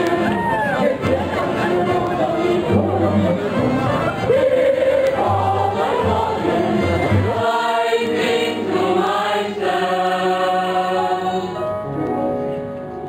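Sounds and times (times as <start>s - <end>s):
amplified group singing: 0.0s - 11.7s
choir-like music with held chords: 0.0s - 13.0s.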